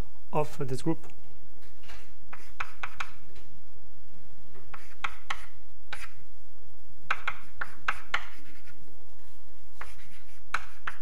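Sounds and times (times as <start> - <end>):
chalk writing on blackboard: 2.3 - 3.2, 4.6 - 6.2, 7.1 - 11.0.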